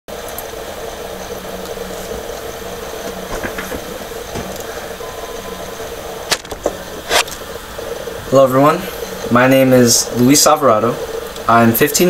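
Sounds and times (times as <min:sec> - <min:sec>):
background hum and hiss: 0:00.1 - 0:12.0
faint knocks: 0:03.0 - 0:05.0.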